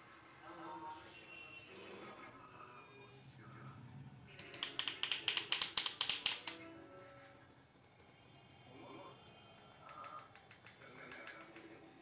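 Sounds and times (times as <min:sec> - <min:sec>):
hands tapping on head: 0:04.4 - 0:06.6, 0:09.6 - 0:11.8.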